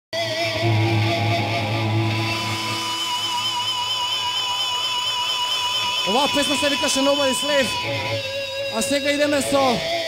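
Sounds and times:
heavy metal band holding notes: 0.2s - 10.0s.

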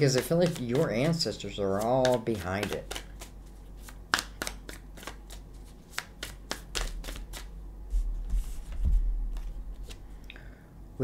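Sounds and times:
cards snapping while shuffled: 0.0s - 7.5s.

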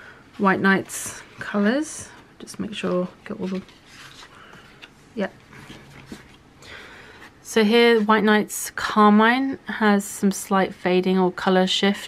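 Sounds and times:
paper strips rustling: 2.6s - 6.4s.

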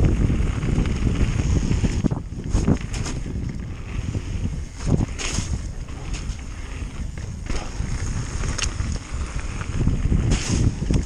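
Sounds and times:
bike clicks and rattles: 0.0s - 11.0s
wind buffeting microphone: 0.0s - 11.0s.

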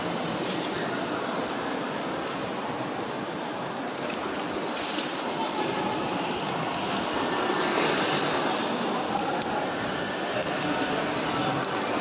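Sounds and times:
shopping mall hall ambience: 0.0s - 12.0s.

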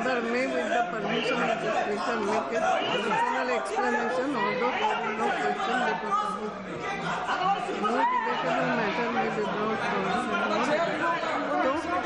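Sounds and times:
din of overlapping voices: 0.0s - 12.0s.

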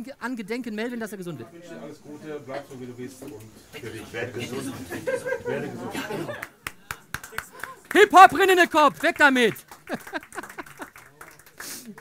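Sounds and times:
sparse handclaps: 6.4s - 12.0s.

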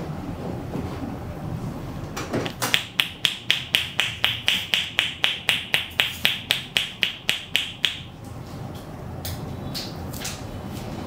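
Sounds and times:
hollow clapping massage pops: 2.4s - 8.1s.

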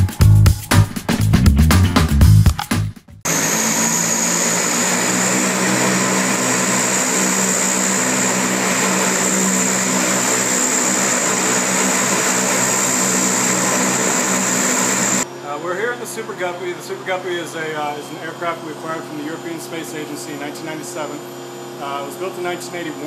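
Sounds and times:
turbine whine: 3.3s - 23.0s
turboprop engines droning: 3.3s - 23.0s.

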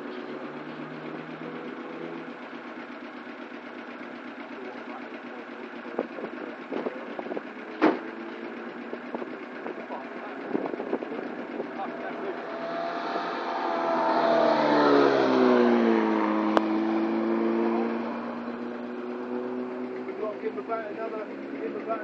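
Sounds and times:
race car engines droning: 0.0s - 22.0s.

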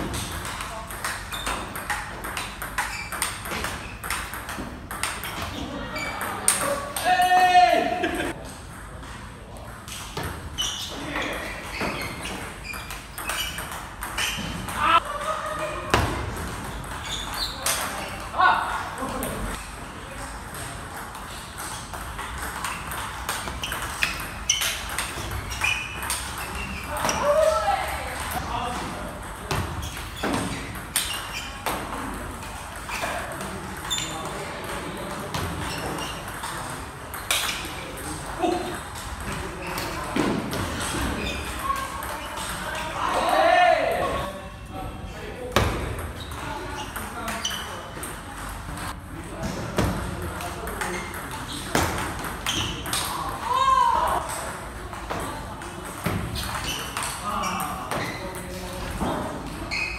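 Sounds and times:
table tennis ball hits: 0.0s - 5.5s.

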